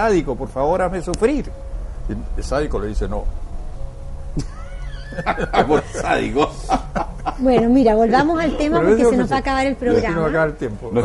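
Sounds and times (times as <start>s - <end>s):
men laughing: 4.4s - 11.0s.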